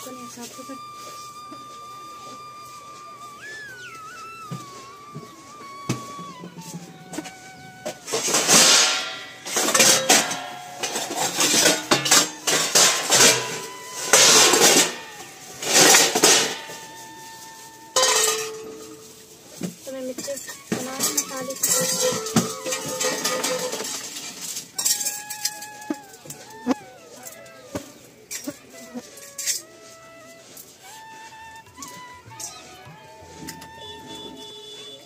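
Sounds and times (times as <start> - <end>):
steel bowls and pots clattering: 5.9 - 26.4.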